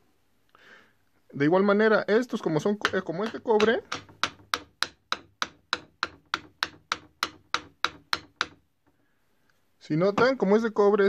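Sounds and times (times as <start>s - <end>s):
hammer tapping metal: 2.4s - 8.6s.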